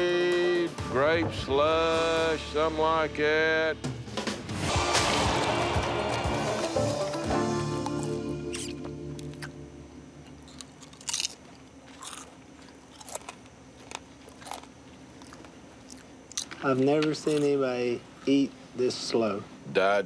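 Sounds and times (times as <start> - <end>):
man chewing crunchy food: 6.5 - 18.3.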